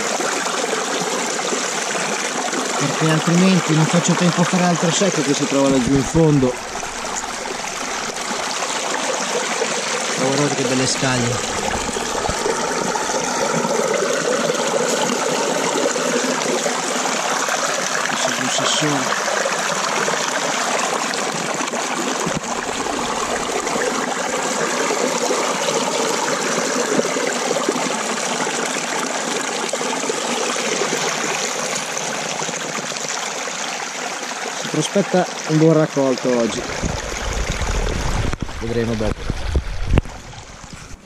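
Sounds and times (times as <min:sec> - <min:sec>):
water running through sluice box: 0:00.0 - 0:41.0.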